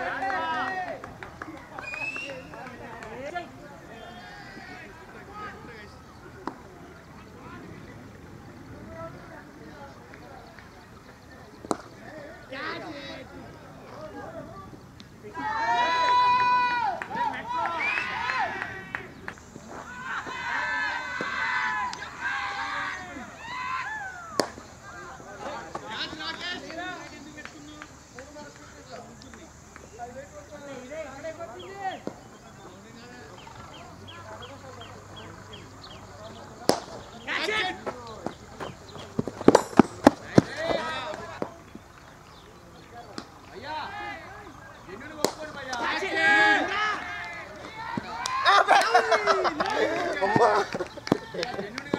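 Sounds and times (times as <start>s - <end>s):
voices: 0.0s - 51.9s
men shouting: 15.3s - 18.9s, 19.9s - 24.4s, 43.6s - 51.4s.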